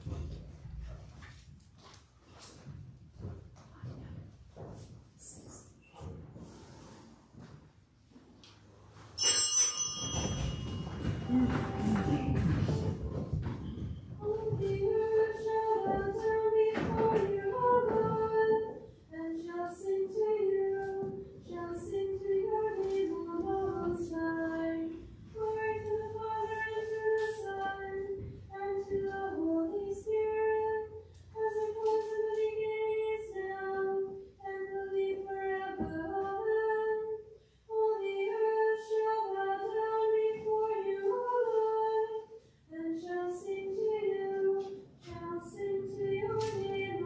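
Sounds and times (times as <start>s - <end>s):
woman singing unaccompanied: 14.2s - 47.0s.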